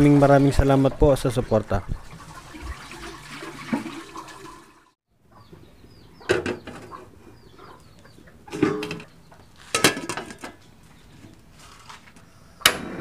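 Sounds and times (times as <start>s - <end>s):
water sloshing in a basin: 0.0s - 4.9s
metal pot clanking: 8.5s - 9.1s, 9.7s - 10.6s.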